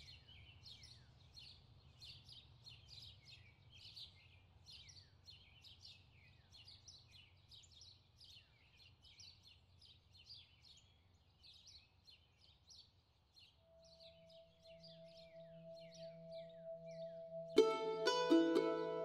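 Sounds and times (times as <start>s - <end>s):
bird chirping: 0.0s - 19.0s
background music drone: 13.7s - 19.0s.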